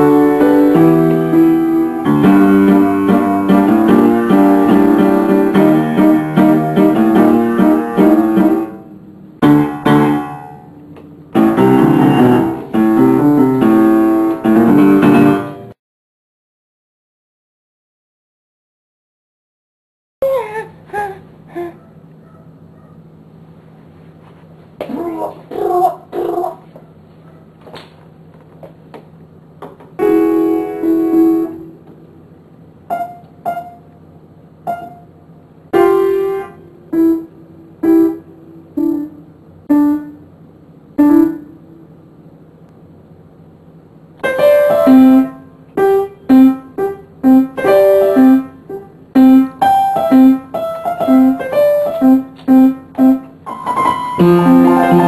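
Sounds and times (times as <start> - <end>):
upright piano playing: 0.0 - 15.8, 30.0 - 31.8, 32.8 - 33.9, 34.6 - 40.3, 40.9 - 41.9, 44.2 - 55.0.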